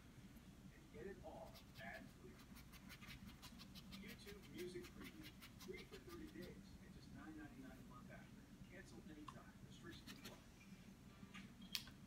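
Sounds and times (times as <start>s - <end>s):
paintbrush scrubbing on canvas: 1.4s - 6.6s.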